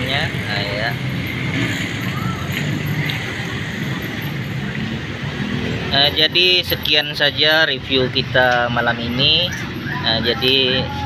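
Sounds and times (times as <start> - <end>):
faint voices: 0.0 - 11.0
motorbikes and cars passing: 0.0 - 11.0.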